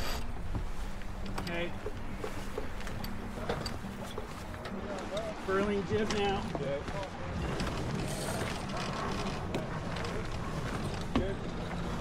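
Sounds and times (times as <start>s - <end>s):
wind and water rushing: 0.0s - 12.0s
faint crew voices: 1.3s - 12.0s.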